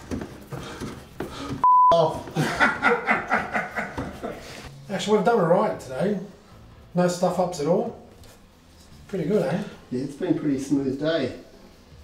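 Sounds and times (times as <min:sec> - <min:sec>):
censor bleep: 0:01.6 - 0:02.0
men chuckling and laughing: 0:02.2 - 0:04.7.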